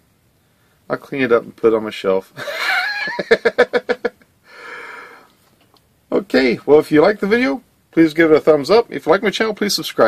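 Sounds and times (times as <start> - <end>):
man exhaling breathily: 4.4 - 5.3.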